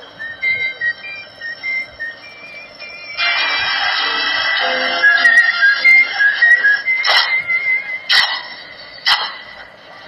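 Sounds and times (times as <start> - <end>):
gramophone record surface hiss: 0.0 - 10.0.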